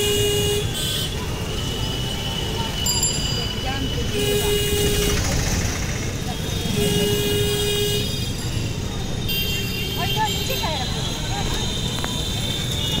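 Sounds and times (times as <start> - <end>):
vehicle horn: 0.0 - 2.8, 3.9 - 5.3, 6.3 - 13.0
rumble of traffic engines: 0.0 - 13.0.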